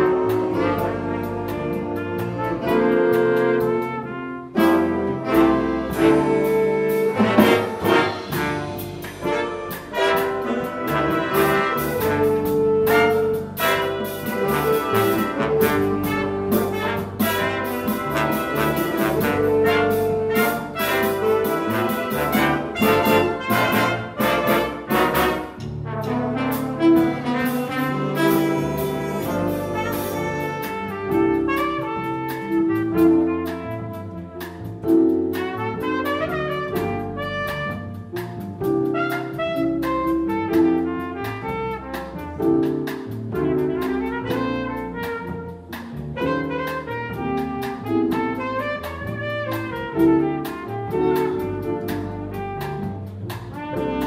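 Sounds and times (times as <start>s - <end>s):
flugelhorn: 0.0s - 54.0s
jazz big band playing: 0.0s - 54.0s.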